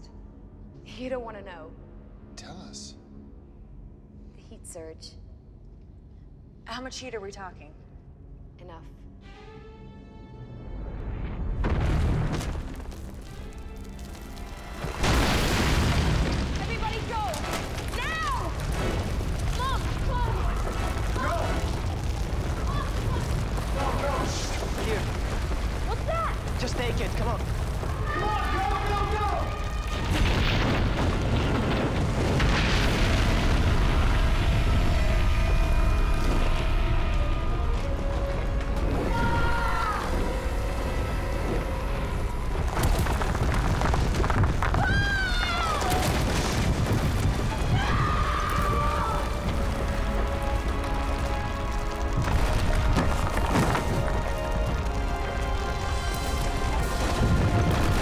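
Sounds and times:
dramatic music score: 0:00.0 - 0:58.0
deep rumble: 0:10.8 - 0:58.0
booms and crashes: 0:11.2 - 0:13.3, 0:14.7 - 0:40.5, 0:42.2 - 0:58.0.

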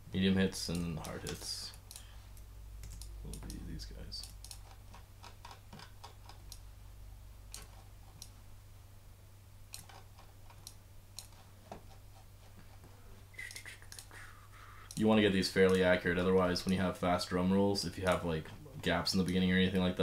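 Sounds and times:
low steady hum: 0:00.0 - 0:20.0
keyboard and mouse clicks: 0:02.8 - 0:06.6, 0:07.5 - 0:08.4, 0:09.7 - 0:11.9, 0:13.5 - 0:14.1.

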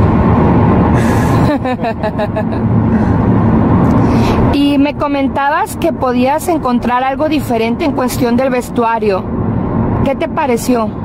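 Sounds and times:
car cabin road and engine noise: 0:00.0 - 0:11.0
person laughing: 0:01.0 - 0:03.1.

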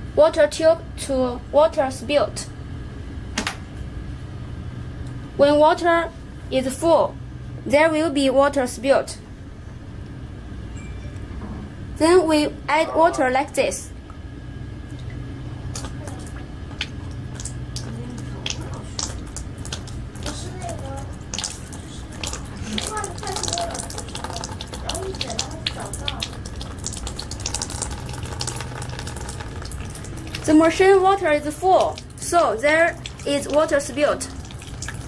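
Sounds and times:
steady low hum: 0:00.0 - 0:35.0
water trickling through a tube: 0:15.8 - 0:35.0.

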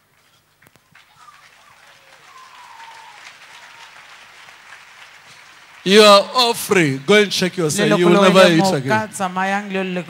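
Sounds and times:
congregation applauding: 0:00.0 - 0:10.0.

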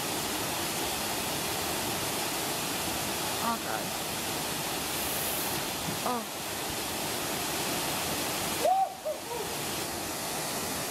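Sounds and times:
waterfall rushing into pool: 0:00.0 - 0:10.9.

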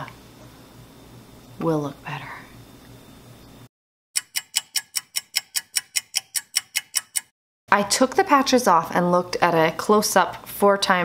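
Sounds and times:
fast even clock ticks: 0:04.2 - 0:07.3.

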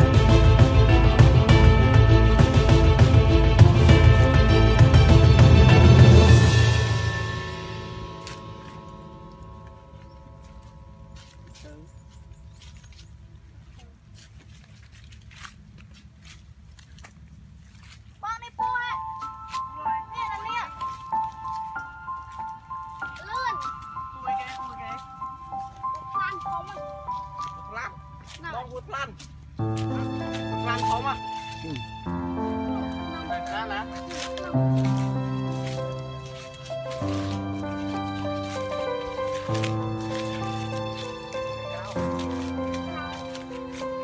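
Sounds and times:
background music: 0:00.0 - 0:12.7, 0:18.4 - 0:44.0
melody of sustained notes: 0:00.0 - 0:13.7, 0:18.6 - 0:44.0.

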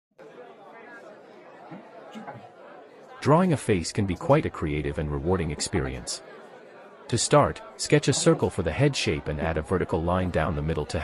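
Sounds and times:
faint chatter of voices: 0:00.2 - 0:11.0.

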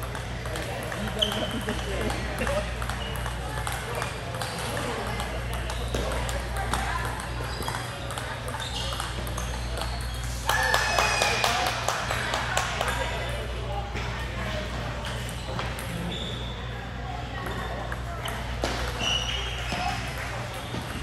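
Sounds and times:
table tennis balls clicking: 0:00.0 - 0:13.4
people's voices: 0:00.0 - 0:21.0.

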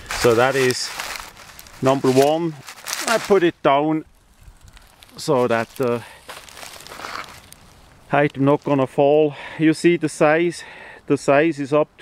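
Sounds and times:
plastic tarp rustling: 0:00.0 - 0:03.5, 0:04.6 - 0:08.3.

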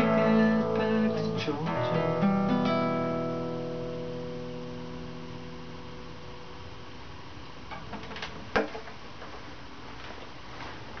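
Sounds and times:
background hiss and hum: 0:00.0 - 0:11.0
light clicks and rustles: 0:07.7 - 0:11.0.

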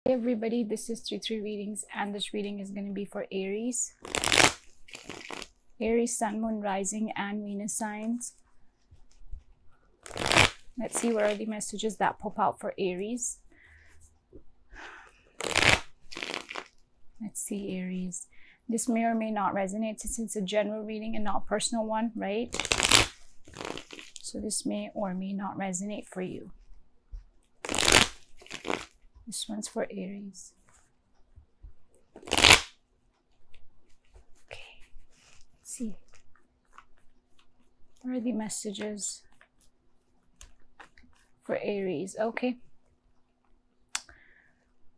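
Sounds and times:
cards being shuffled: 0:04.0 - 0:05.6, 0:09.0 - 0:11.5, 0:15.4 - 0:16.8, 0:22.5 - 0:24.2, 0:27.6 - 0:29.0, 0:32.1 - 0:32.8.

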